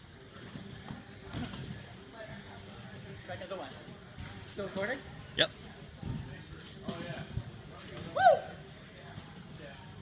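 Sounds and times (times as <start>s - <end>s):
trampoline thuds and creaks: 0.3s - 2.0s, 6.0s - 8.2s.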